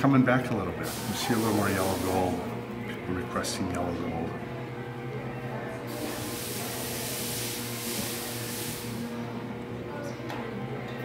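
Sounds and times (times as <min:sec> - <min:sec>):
spraying hiss: 0:00.9 - 0:02.4, 0:05.9 - 0:09.2.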